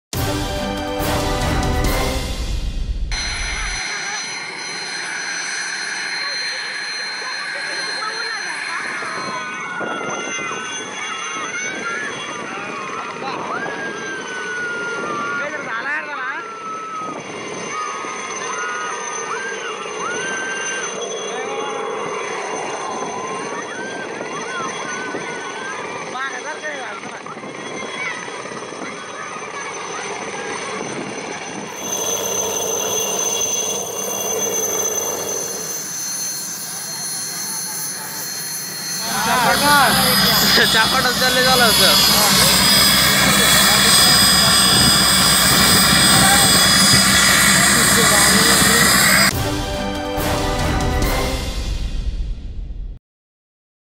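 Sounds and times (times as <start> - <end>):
helicopter rotor and turbine whine: 0.2 - 51.4
people calling out excitedly: 39.0 - 44.6.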